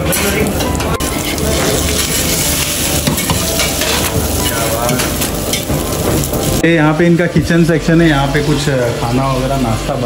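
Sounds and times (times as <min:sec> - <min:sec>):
omelette sizzling on griddle: 0:00.0 - 0:10.0.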